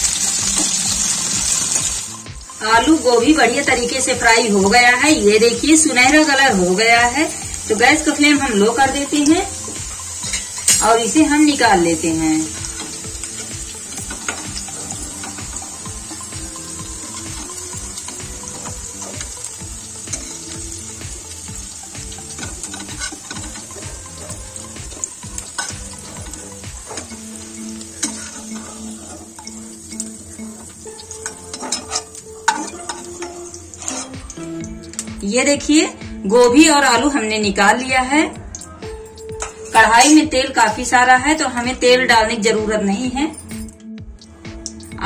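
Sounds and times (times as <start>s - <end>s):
vegetables sizzling in hot oil: 0.0s - 42.5s
metal spatula scraping a pan: 0.1s - 1.9s, 8.8s - 11.2s, 12.5s - 21.4s, 22.1s - 34.6s.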